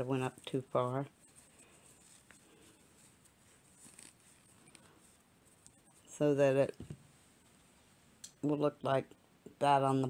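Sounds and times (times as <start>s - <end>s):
fabric handling: 0.0s - 8.2s.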